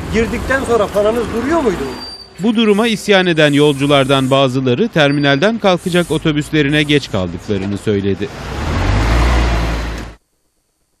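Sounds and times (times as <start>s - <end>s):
road noise: 0.0s - 10.2s
bus engine rumble: 4.2s - 10.2s.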